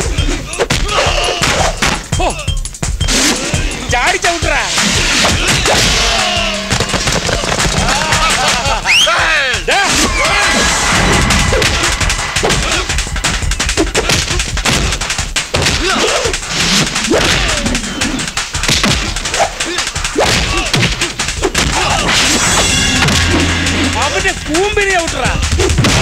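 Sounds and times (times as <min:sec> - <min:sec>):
background music: 0:00.0 - 0:26.0
men shouting and yelling: 0:00.0 - 0:26.0
punch impact sound effects: 0:10.3 - 0:15.7, 0:21.9 - 0:26.0.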